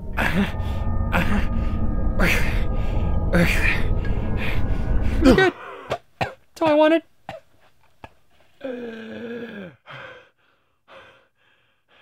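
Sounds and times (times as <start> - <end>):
man breathing heavily: 9.7 - 12.0.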